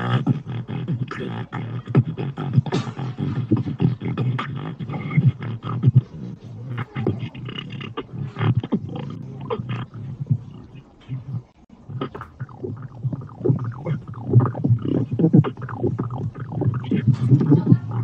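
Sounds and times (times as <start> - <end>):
beatboxing: 0.0 - 18.0.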